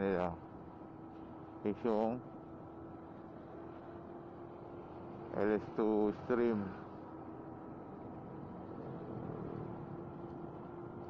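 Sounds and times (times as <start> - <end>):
scooter engine and road drone: 0.0 - 11.0.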